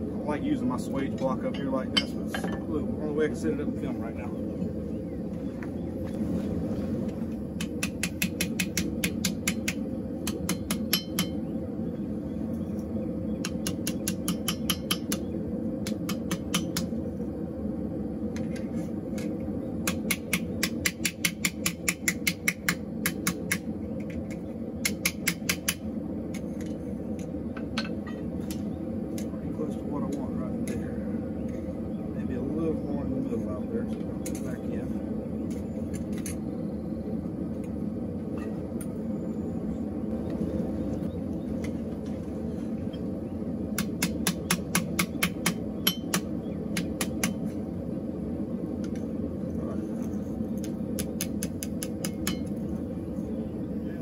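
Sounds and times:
steady low hum: 0.0 - 54.0
hammer striking steel on anvil: 7.6 - 11.4, 13.4 - 15.2, 15.8 - 16.9, 43.8 - 47.4, 51.2 - 52.5.

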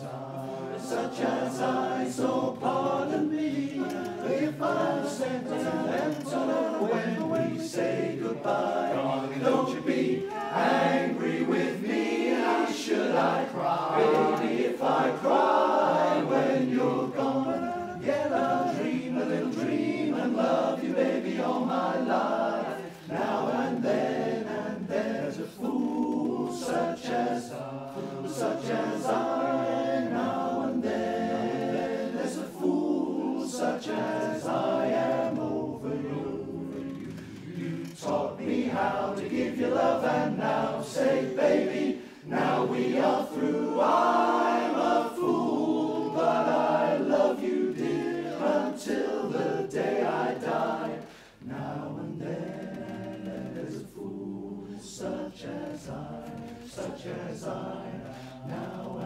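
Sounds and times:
male chorus singing a cappella: 0.0 - 59.0.

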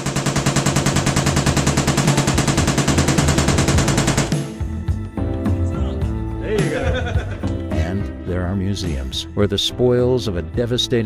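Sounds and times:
machine gun automatic fire: 0.0 - 4.6.

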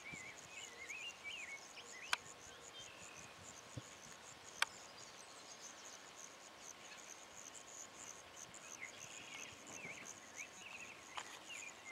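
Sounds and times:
faint insect chirping: 0.0 - 11.9.

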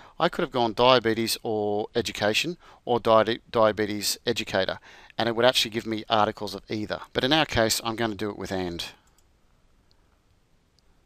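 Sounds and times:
computer mouse clicks: 9.0 - 9.3.

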